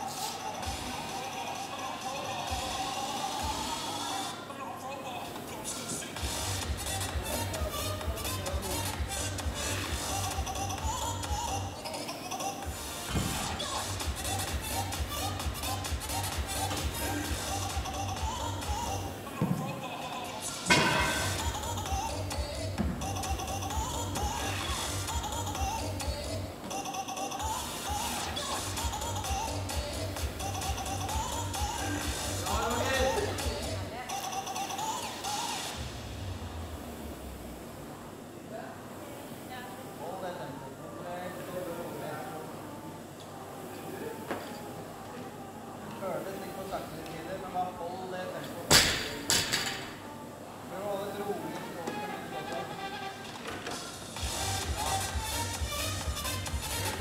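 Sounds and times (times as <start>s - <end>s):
faint voices in echoing gym: 0.0s - 57.0s
background music with bass beat: 6.2s - 11.7s, 12.7s - 19.1s, 20.5s - 26.6s, 27.6s - 33.9s, 53.7s - 57.0s.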